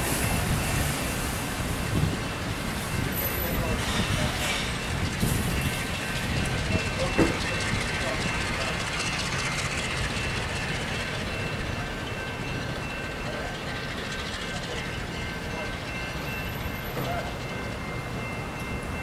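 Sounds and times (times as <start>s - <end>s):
diesel freight train rumbling: 0.0s - 19.0s
high-pitched ringing tones: 0.0s - 19.0s.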